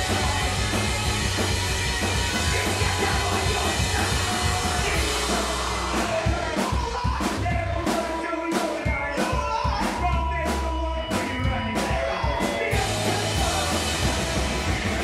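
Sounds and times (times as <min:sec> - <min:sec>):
electric guitars: 0:00.0 - 0:10.1, 0:11.0 - 0:15.0
bass guitar: 0:00.0 - 0:15.0
drum kit beat: 0:00.0 - 0:15.0
person singing: 0:02.3 - 0:15.0.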